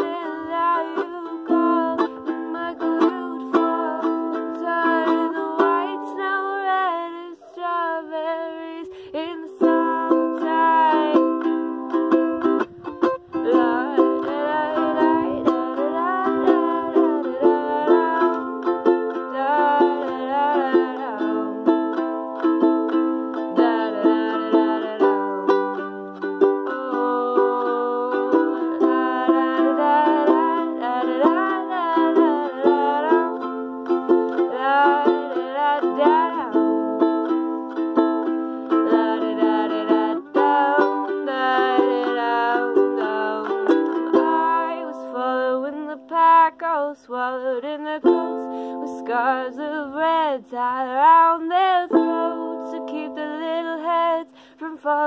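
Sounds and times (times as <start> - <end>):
ukulele strumming: 0.0 - 55.0
young woman singing: 0.0 - 55.0.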